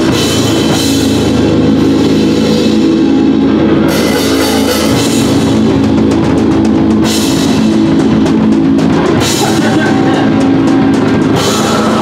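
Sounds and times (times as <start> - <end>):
cymbals crashing: 0.0 - 12.0
heavy metal band playing loud: 0.0 - 12.0.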